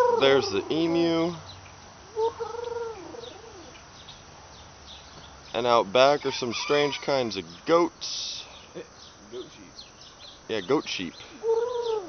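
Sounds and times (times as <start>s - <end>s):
small birds chirping: 0.0s - 12.0s
soft low bird call: 2.1s - 3.8s, 11.1s - 12.0s.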